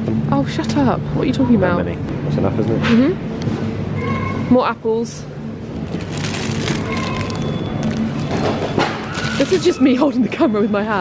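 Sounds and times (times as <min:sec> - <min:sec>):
shop hum: 0:00.0 - 0:11.0
plastic bag crinkling: 0:05.8 - 0:09.9.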